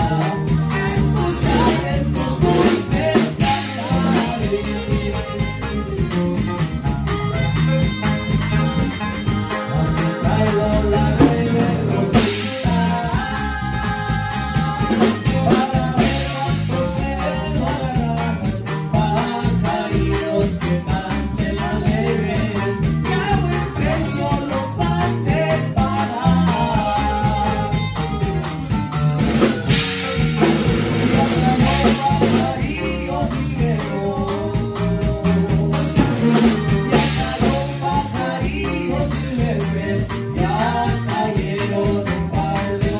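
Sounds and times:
saxophone: 0.0s - 17.4s, 35.8s - 38.4s
accordion: 0.0s - 42.9s
drum kit beat: 0.0s - 42.9s
electric bass: 0.0s - 42.9s
twelve-string guitar: 0.0s - 42.9s
alto saxophone: 3.5s - 10.2s.

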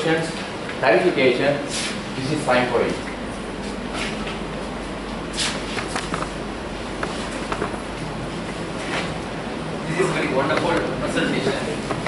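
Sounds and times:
room noise in large hall: 0.0s - 12.0s.

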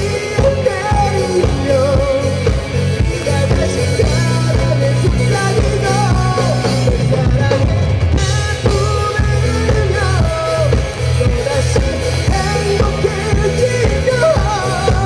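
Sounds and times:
drum kit: 0.0s - 15.0s
electric guitar: 0.0s - 15.0s
person singing: 0.0s - 15.0s.

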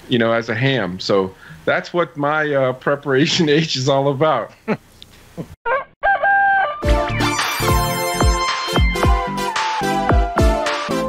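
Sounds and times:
electronic intro music: 6.8s - 11.0s.

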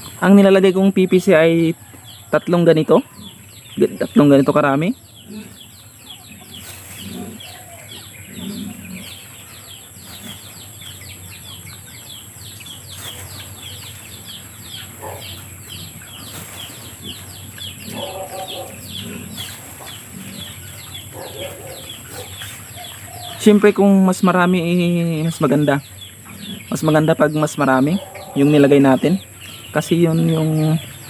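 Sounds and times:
birds chirping rapidly: 0.0s - 31.0s
chickens clucking: 0.0s - 31.0s.

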